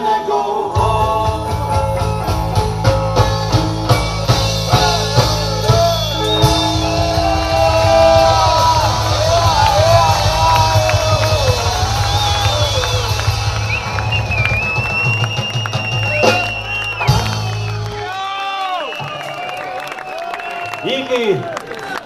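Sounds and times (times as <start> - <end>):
person singing: 0.0 - 2.4, 4.4 - 11.6
live rock band playing: 0.0 - 18.3
bass line: 0.7 - 18.1
crowd whooping and cheering: 5.0 - 22.0.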